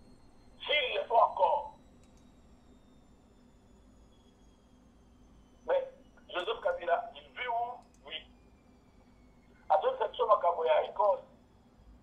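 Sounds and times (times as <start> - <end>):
speech over a telephone line: 0.6 - 1.8, 5.7 - 8.3, 9.7 - 11.3.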